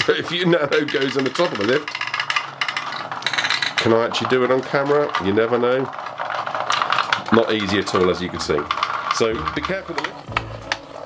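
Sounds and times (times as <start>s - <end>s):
toy robot bug rattling on plastic: 0.0s - 11.0s.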